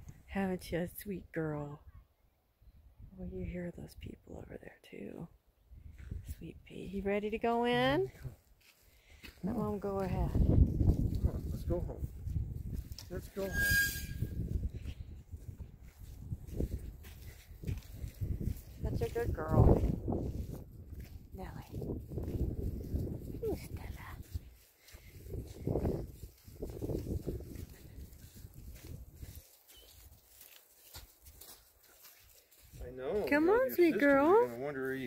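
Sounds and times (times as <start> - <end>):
footsteps on dirt: 8.0 - 13.5, 14.4 - 35.0.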